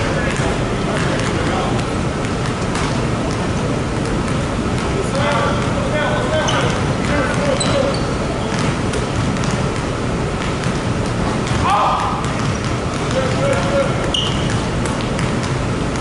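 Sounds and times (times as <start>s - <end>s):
basketballs bouncing on wood floor: 0.0s - 16.0s.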